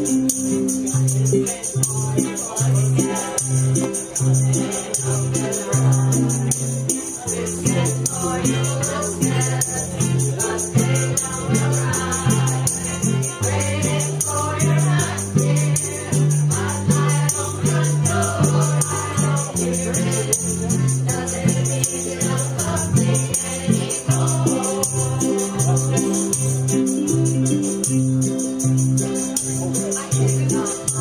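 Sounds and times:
string band playing: 0.0 - 31.0
voices singing together: 0.0 - 31.0.

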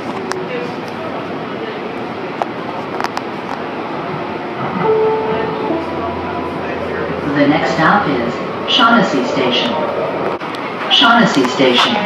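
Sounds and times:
train rumble from inside: 0.0 - 12.0
low hum: 4.6 - 9.2.

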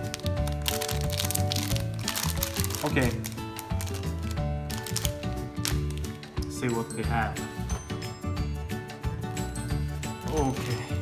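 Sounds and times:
plastic wrapper crinkling: 0.0 - 6.3
background music: 0.0 - 11.0.

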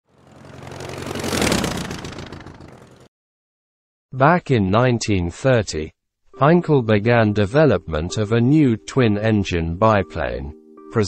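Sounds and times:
passing engine hum with hiss: 0.1 - 3.0.

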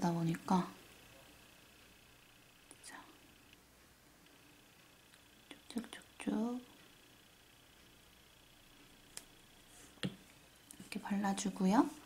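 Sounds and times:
high-pitched hum: 0.0 - 12.0.

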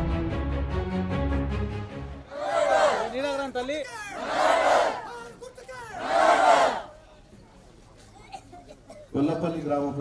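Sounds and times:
crowd shouting in unison: 2.3 - 3.2, 4.1 - 5.2, 5.9 - 7.0.

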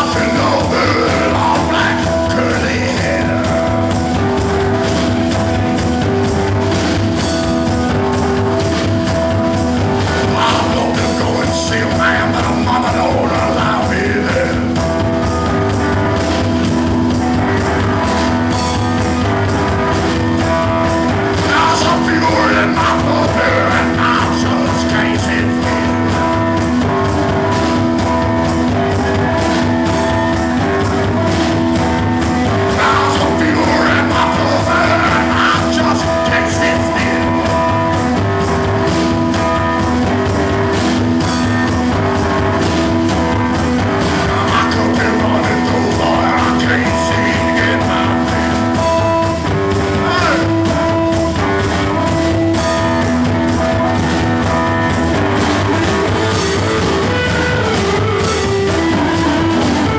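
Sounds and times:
person singing: 0.0 - 4.3, 10.0 - 16.5, 19.8 - 26.8, 27.4 - 40.0, 43.7 - 54.7
drum kit playing: 0.0 - 59.9
keyboard playing: 0.0 - 59.9.

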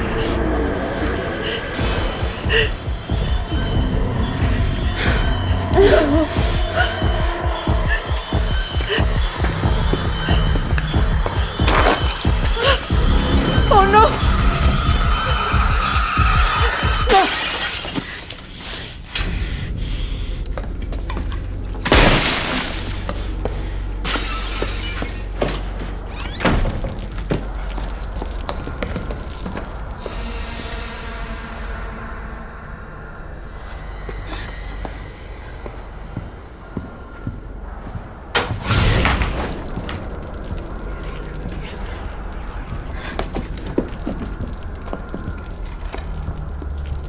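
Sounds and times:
tense film score: 0.0 - 47.0.

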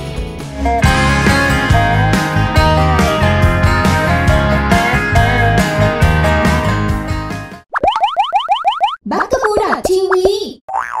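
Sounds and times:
warbling sound effect: 7.7 - 9.0.

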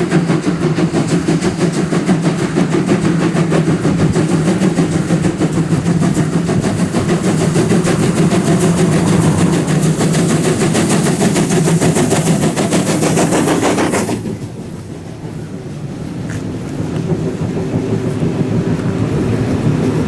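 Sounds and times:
steam locomotive exhaust chuffs: 0.0 - 20.0
low drone: 5.8 - 12.3.

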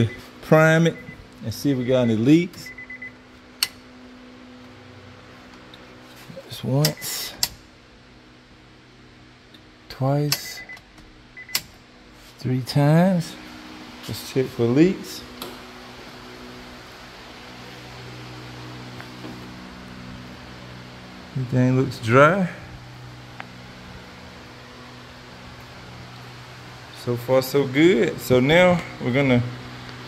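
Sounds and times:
fuel pump humming: 0.0 - 8.0, 9.4 - 30.0.

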